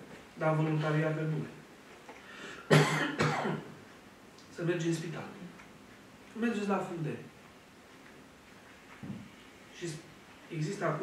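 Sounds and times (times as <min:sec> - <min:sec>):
man coughing: 0:02.7 - 0:03.8.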